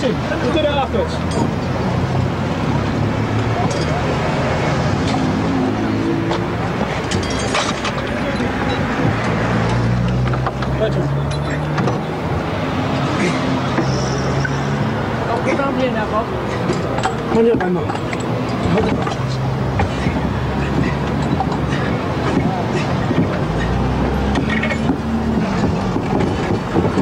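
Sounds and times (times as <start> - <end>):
vehicle engines running: 0.0 - 27.0
background voices: 3.3 - 27.0
tools clinking on metal: 3.6 - 4.0, 7.0 - 12.0, 16.5 - 22.0.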